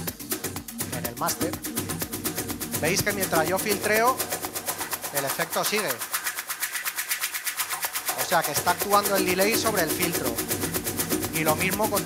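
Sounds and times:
fast ticking hi-hats: 0:00.0 - 0:12.0
filtered electronic dance music: 0:00.0 - 0:12.0.

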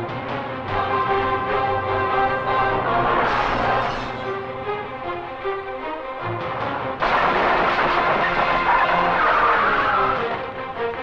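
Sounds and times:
dramatic film music: 0:00.0 - 0:11.0
vehicle crashing through wooden gate: 0:07.0 - 0:10.4.

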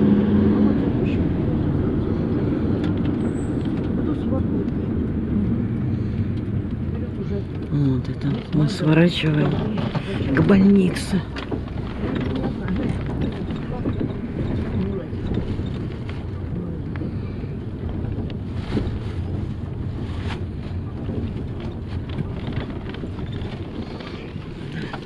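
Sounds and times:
bus engine and road rumble: 0:00.0 - 0:25.0
knocks and rattles: 0:07.5 - 0:16.5, 0:17.8 - 0:25.0.

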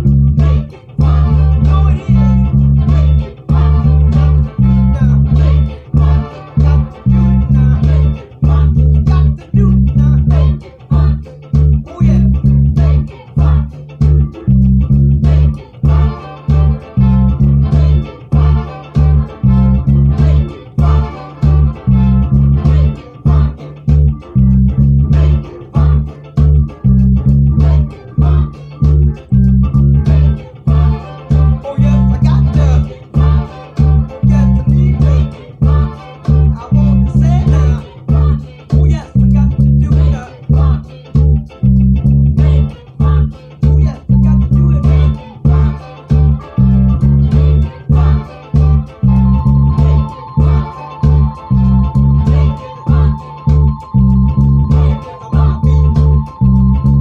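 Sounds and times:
fretless bass funk line: 0:00.0 - 0:57.0
funk record with drums: 0:00.0 - 0:57.0.

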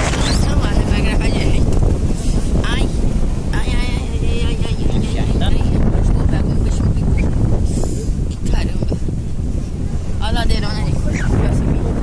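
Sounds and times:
vehicle rumbling on dirt road: 0:00.0 - 0:12.0
wind buffeting microphone: 0:00.0 - 0:12.0.

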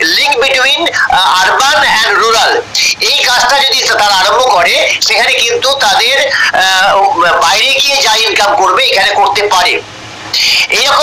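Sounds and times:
man talking over video call: 0:00.0 - 0:09.8, 0:10.4 - 0:11.0.

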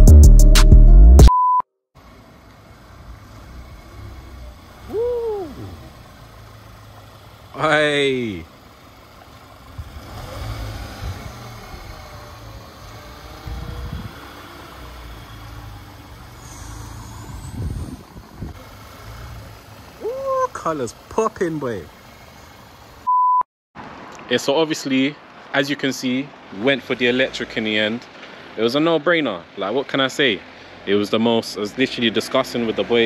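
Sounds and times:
short steady beep: 0:01.3 - 0:01.7, 0:23.0 - 0:23.4
car engine idling: 0:02.0 - 0:23.1
person calling out: 0:04.8 - 0:06.0, 0:20.0 - 0:21.5.

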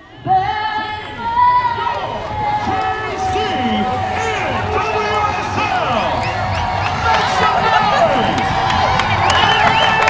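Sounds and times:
crowd cheering and whooping: 0:00.0 - 0:10.0.

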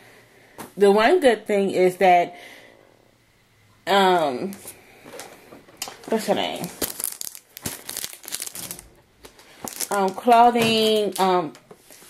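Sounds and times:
packing material crinkling: 0:05.1 - 0:12.0.

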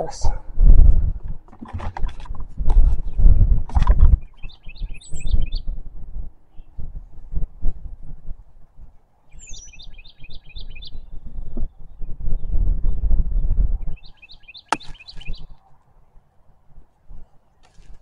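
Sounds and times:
songbird chirping: 0:04.2 - 0:05.8, 0:09.1 - 0:12.6, 0:13.8 - 0:18.0.

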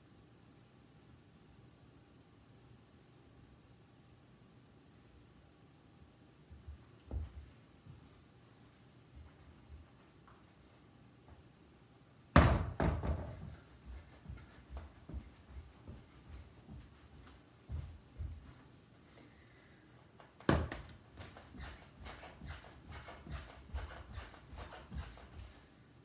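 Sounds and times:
soft footsteps: 0:06.4 - 0:11.6, 0:12.6 - 0:19.2, 0:20.2 - 0:25.7
light thuds of jumping jacks: 0:12.4 - 0:18.7.

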